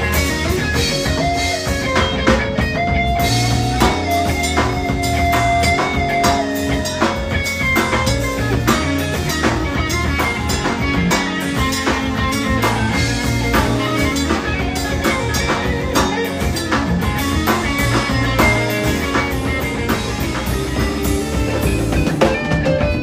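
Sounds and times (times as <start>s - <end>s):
drum kit steady beat: 0.0s - 23.0s
electric guitar playing: 0.0s - 23.0s.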